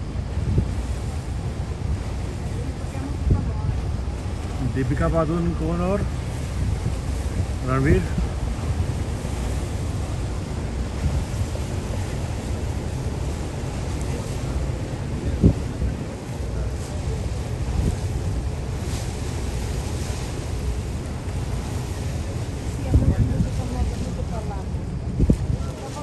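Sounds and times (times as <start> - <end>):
low boat rumble: 0.0 - 26.0
wind buffeting microphone: 0.0 - 26.0.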